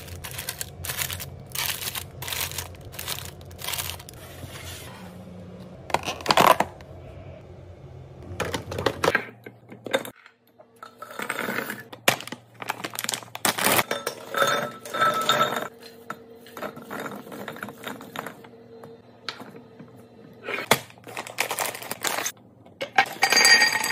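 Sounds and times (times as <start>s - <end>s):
candies clinking against glass: 0.0s - 4.2s
plastic wrappers crinkling: 0.0s - 4.2s, 12.1s - 13.8s, 20.9s - 22.3s.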